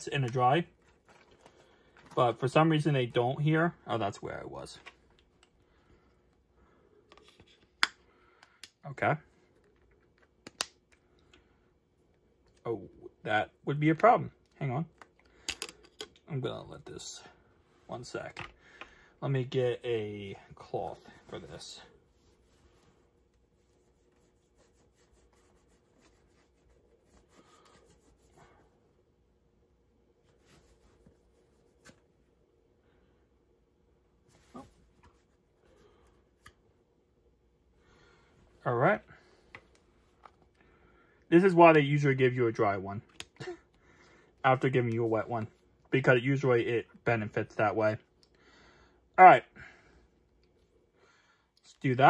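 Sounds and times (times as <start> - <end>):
faint steady hum: 0.0 - 52.0.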